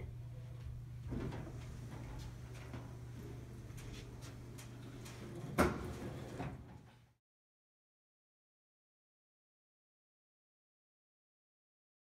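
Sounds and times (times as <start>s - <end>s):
low steady hum: 0.0s - 6.8s.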